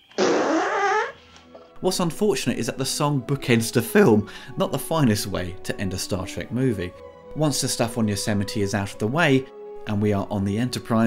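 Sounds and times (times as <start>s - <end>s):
comic fart sound effect: 0.0s - 1.2s.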